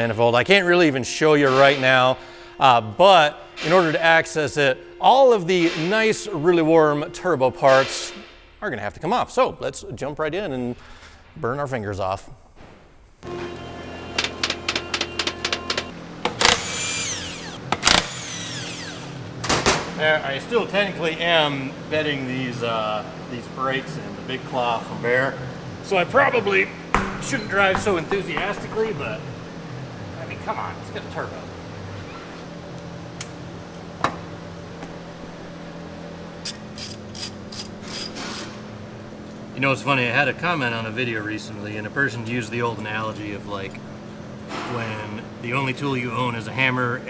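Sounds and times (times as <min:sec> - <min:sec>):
low shop hum: 0:00.0 - 0:47.0
ratchet wrench clicking: 0:36.4 - 0:38.5.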